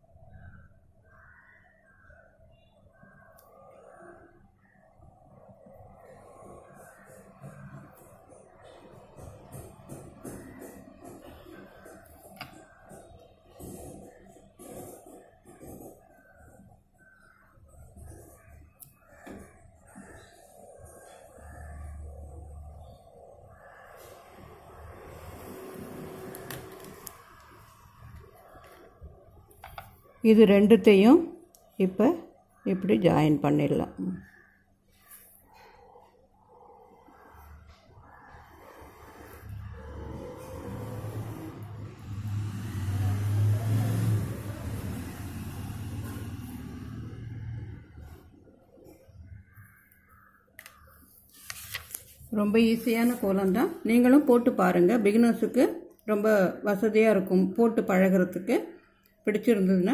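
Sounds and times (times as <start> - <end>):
marker drawing on paper: 10.4 - 16.3, 38.3 - 41.6.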